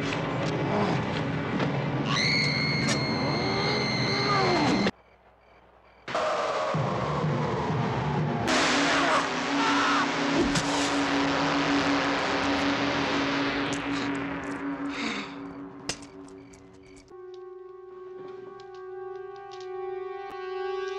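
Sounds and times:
horror film music: 0.0s - 20.9s.

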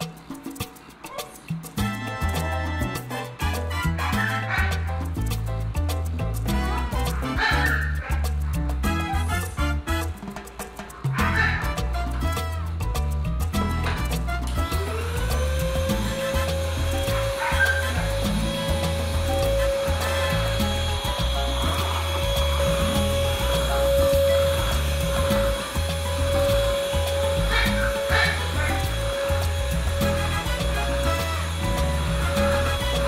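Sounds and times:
background music with beat: 0.0s - 33.0s
vacuum cleaner motor whine: 14.7s - 33.0s.

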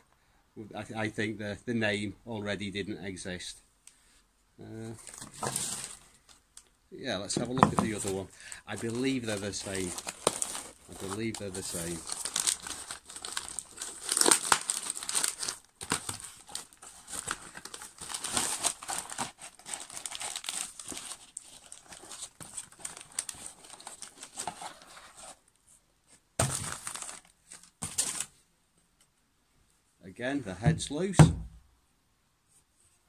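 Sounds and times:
packaging tearing and crumpling: 7.9s - 25.4s, 26.4s - 28.3s.

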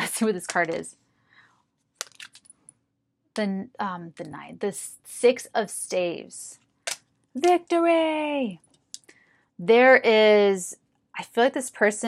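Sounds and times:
cards clicking and snapping: 2.0s - 2.5s.

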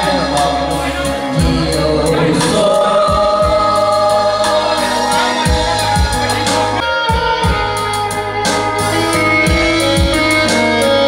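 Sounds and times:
man singing through microphone: 0.0s - 6.8s
backing music with bass and drums: 0.0s - 11.0s.

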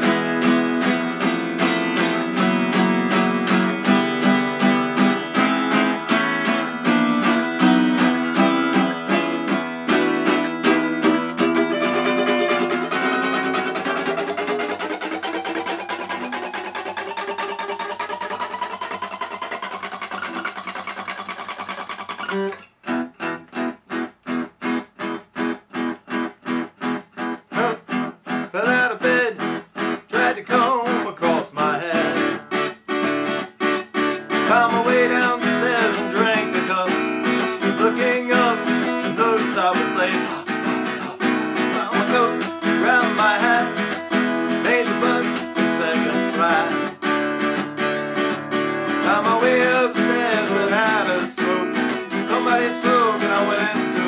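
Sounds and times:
acoustic guitar strumming: 0.0s - 54.0s.

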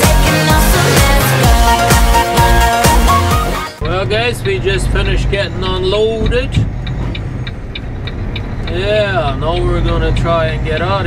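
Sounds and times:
background music: 0.0s - 3.8s
diesel truck engine running: 0.0s - 11.0s
man talking: 3.8s - 6.7s, 8.7s - 11.0s.

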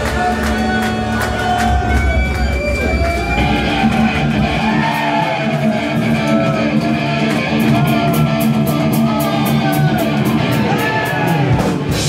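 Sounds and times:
bass line: 0.0s - 12.0s
electric guitar lead: 0.0s - 12.0s.

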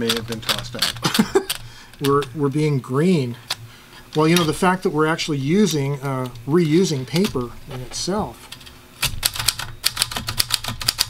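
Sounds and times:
manual typewriter typing: 0.0s - 2.4s, 3.5s - 4.8s, 5.5s - 11.0s.

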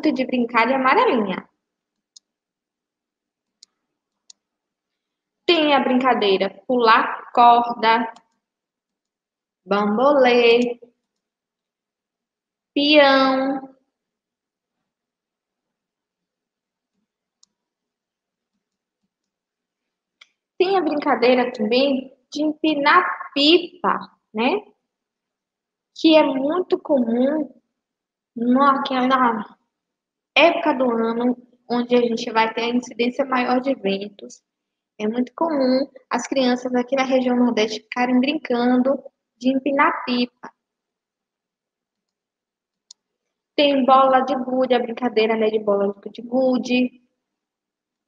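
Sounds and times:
faint computer mouse click: 1.9s - 2.3s
computer mouse click: 1.9s - 2.4s, 3.4s - 4.5s, 8.1s - 9.2s, 10.6s - 11.8s, 16.9s - 17.6s, 18.4s - 19.4s, 41.9s - 43.4s.

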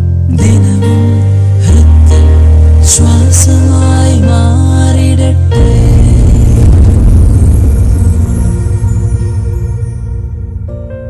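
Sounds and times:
loud deep rumble: 0.0s - 11.0s.

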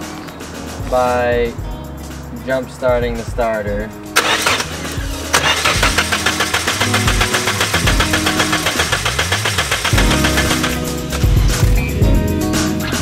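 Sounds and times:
background music: 0.0s - 13.0s
car engine cranking on starter: 4.2s - 11.0s.

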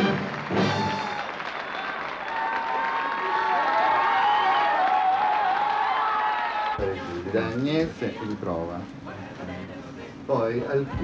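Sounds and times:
audience applauding: 0.0s - 6.8s.

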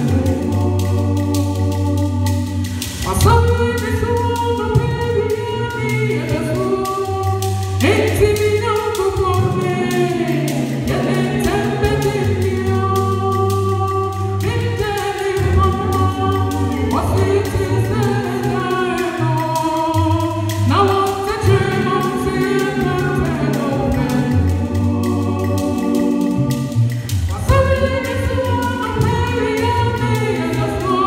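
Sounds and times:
gospel group singing in harmony: 0.0s - 31.0s
gourd shaker beat: 0.0s - 31.0s.

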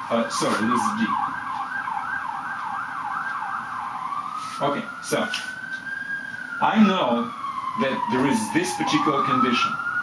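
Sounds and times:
emergency siren: 0.0s - 10.0s.

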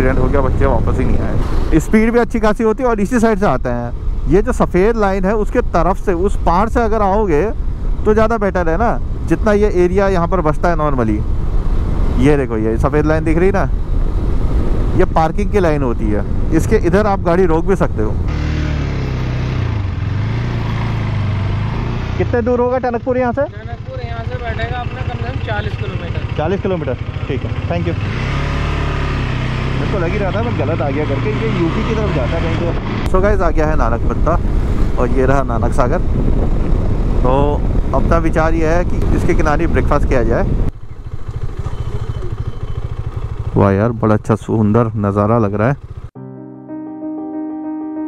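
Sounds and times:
road and wind noise: 0.0s - 46.2s
motorcycle engine at low revs: 13.0s - 33.4s, 34.0s - 46.2s.

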